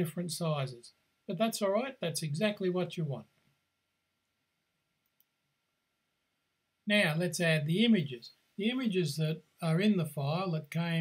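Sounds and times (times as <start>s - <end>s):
faint click: 5.0s - 5.4s.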